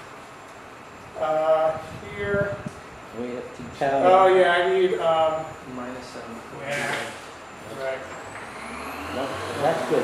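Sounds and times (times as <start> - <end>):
thin rising whine: 7.3 - 10.0.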